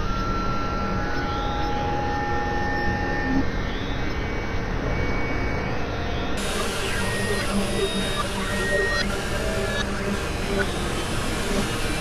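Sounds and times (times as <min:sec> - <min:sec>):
thin steady synth tones: 0:00.0 - 0:12.0
noisy synthesizer drone: 0:00.6 - 0:12.0.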